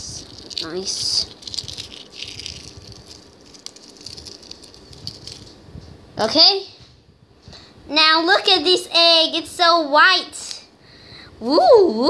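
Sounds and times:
eggshell crackling as peeled: 0.0s - 5.6s.

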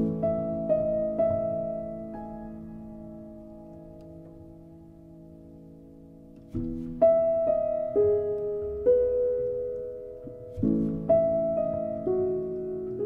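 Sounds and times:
slow gentle piano music: 0.0s - 13.0s.

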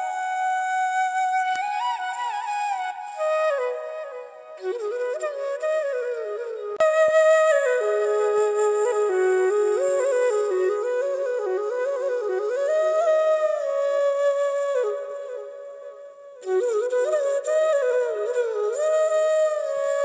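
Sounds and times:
flute-like wind instrument melody: 0.0s - 20.0s.

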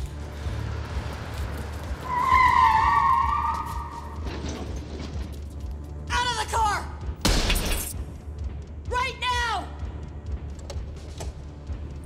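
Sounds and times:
car tyres screeching: 0.0s - 5.3s
film score: 0.0s - 12.0s.

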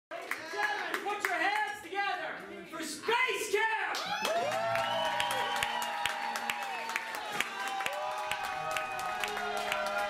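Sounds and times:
hand claps: 4.0s - 10.0s.

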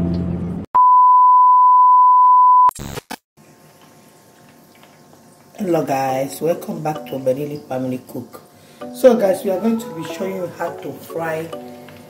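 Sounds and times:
steady electronic beep: 0.8s - 2.7s.

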